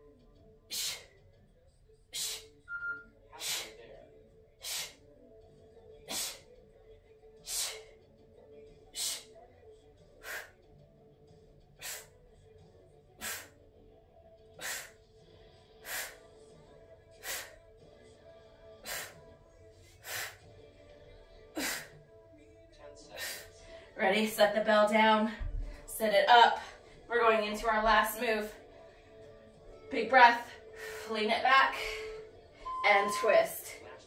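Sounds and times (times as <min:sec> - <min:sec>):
faint background music: 0:00.0 - 0:34.0.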